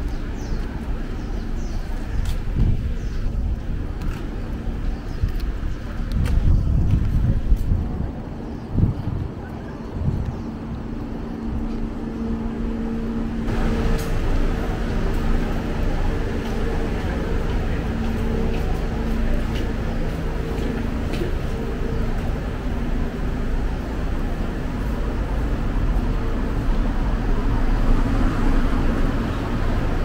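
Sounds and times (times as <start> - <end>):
cars passing with low rumble: 0.0 - 30.0
steady engine hum: 0.0 - 30.0.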